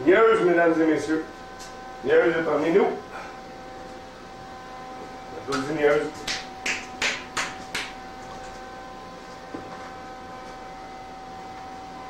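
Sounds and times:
faint background hum: 0.0 - 12.0
fingers snapping: 6.2 - 8.0.

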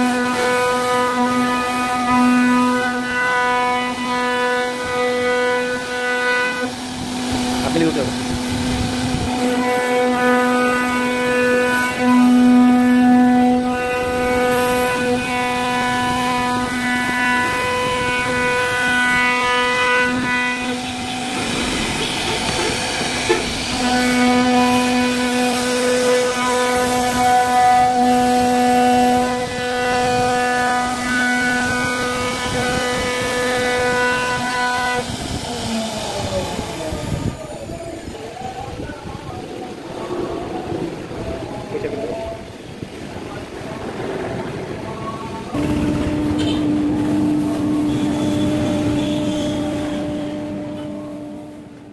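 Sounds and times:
cnc router machine hum: 0.0 - 38.2.

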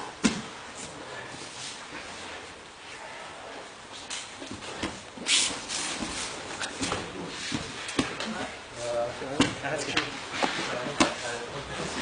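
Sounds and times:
bodies scuffling on mats: 3.6 - 12.0.

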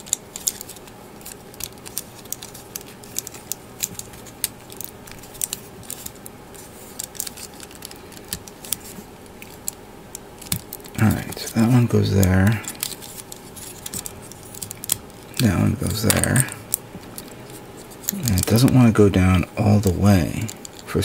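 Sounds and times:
plastic parts clicking and scraping: 0.0 - 19.4, 20.1 - 21.0.

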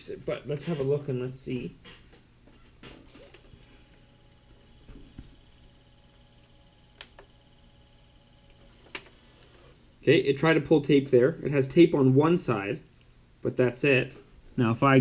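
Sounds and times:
faint motor whine: 1.2 - 15.0.

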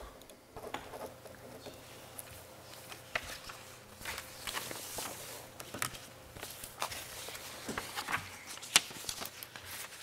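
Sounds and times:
papers rustling and shuffling: 0.6 - 10.0.

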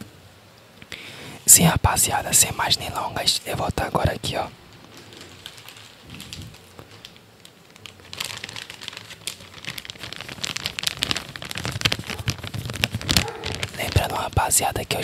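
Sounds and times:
plastic bag crinkling: 1.6 - 15.0.

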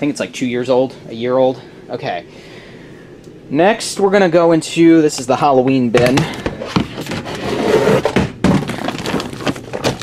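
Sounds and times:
contents rustling and knocking: 6.0 - 10.0.

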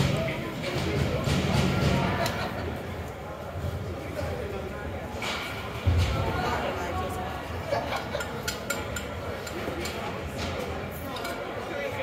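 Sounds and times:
echoing chatter of voices: 0.0 - 12.0.

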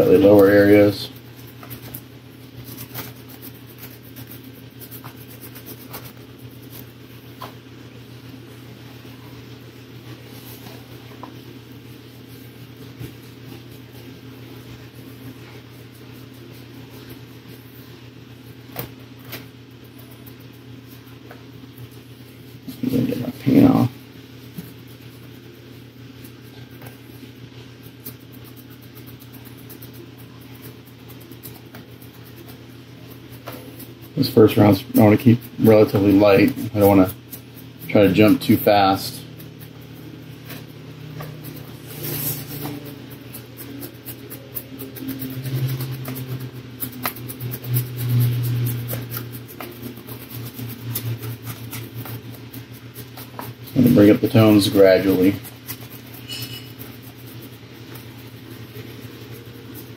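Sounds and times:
brush scratching on resin: 0.0 - 18.6, 19.6 - 59.9
steady low hum: 0.0 - 59.9.

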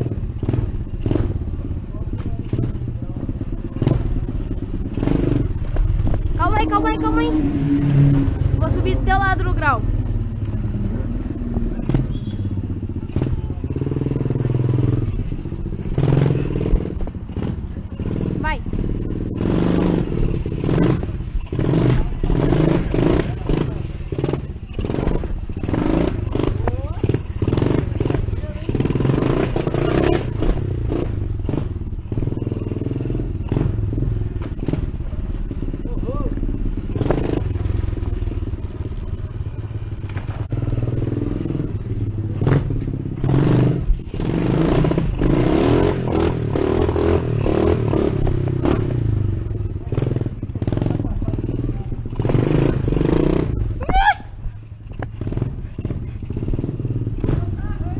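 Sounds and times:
mini motorcycle engine revving: 0.0 - 57.9.

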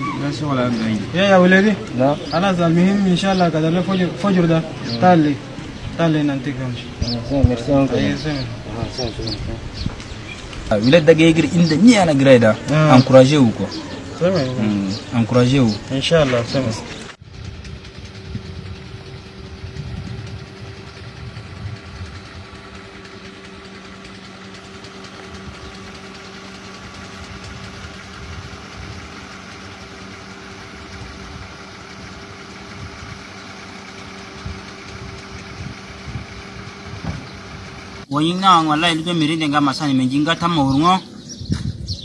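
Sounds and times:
motor humming steadily: 0.0 - 42.0.

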